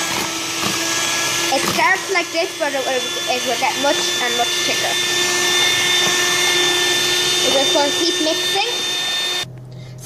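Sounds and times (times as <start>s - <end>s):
electric hand mixer whirring: 0.0s - 9.5s.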